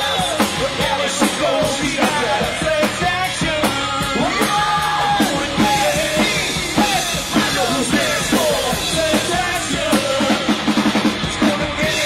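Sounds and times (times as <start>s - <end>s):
drum kit beat: 0.0s - 12.0s
electric guitars: 0.0s - 12.0s
person singing: 0.0s - 12.0s.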